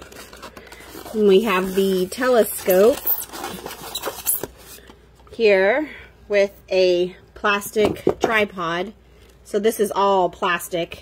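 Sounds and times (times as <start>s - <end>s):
plastic scraping against foam: 0.0s - 4.9s.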